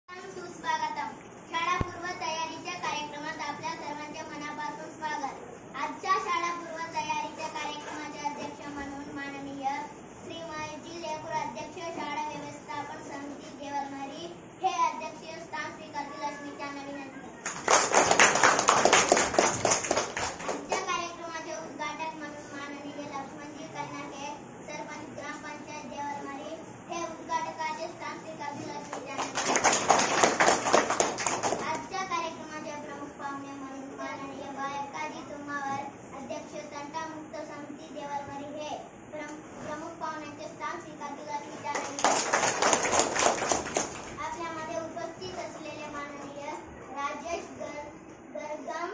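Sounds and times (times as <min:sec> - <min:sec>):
children clapping: 0:17.4 - 0:20.9, 0:28.8 - 0:31.8, 0:41.7 - 0:44.3.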